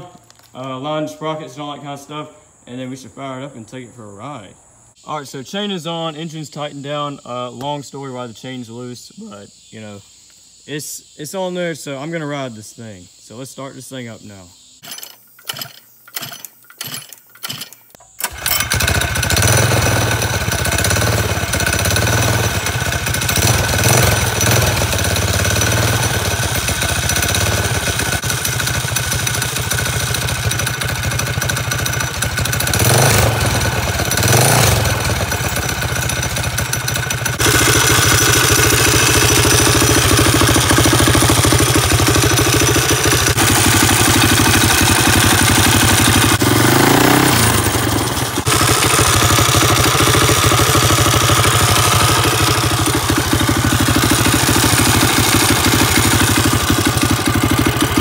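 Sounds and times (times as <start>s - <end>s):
small engine starting and idling: 14.8s - 58.0s
engine revving: 18.2s - 58.0s.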